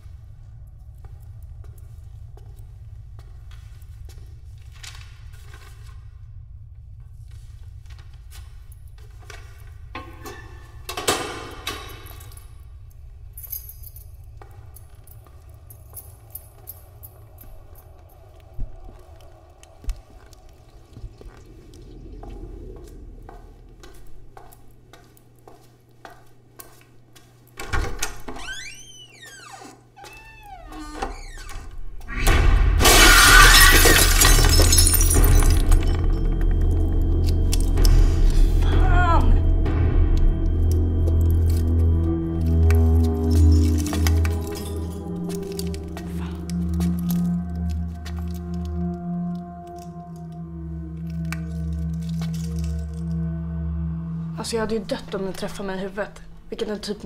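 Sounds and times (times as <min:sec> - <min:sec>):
film score music: 0:00.0 - 0:26.5, 0:30.2 - 0:57.0
glass breaking: 0:32.8 - 0:36.1.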